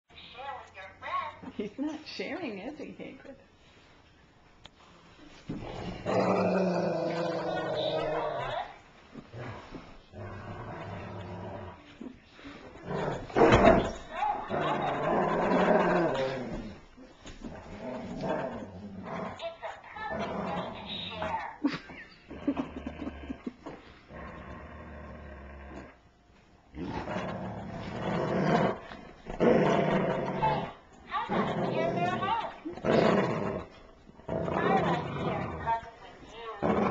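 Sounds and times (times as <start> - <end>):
dog growling: 5.5 - 19.4, 20.1 - 21.4, 22.3 - 26.0, 26.7 - 35.9, 36.6 - 36.9.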